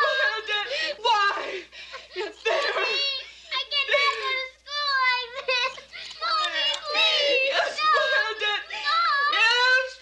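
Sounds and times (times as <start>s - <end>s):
young girl crying and wailing: 2.2s - 9.9s.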